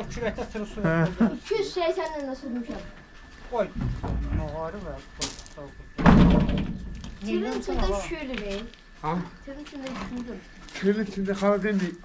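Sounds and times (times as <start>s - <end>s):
men speaking: 0.0s - 1.4s, 3.4s - 5.8s, 9.0s - 9.4s, 10.7s - 12.0s
heavy thud: 5.8s - 7.0s.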